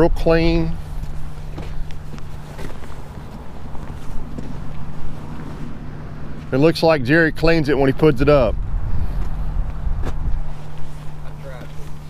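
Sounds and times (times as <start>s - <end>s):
steady low hum: 0.0s - 12.0s
footsteps on gravel: 0.8s - 6.6s.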